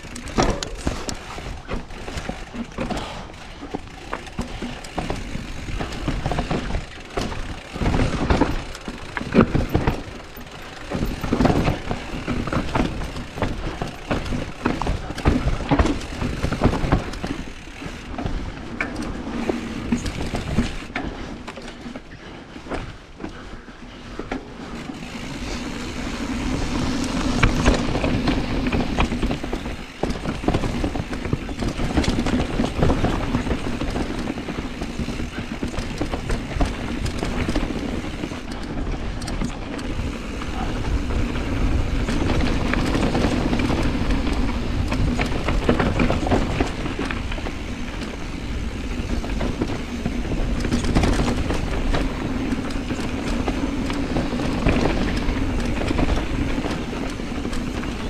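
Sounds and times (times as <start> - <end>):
bike chain and frame rattling: 0.0 - 58.0
bike tyres crunching over dirt: 0.0 - 58.0.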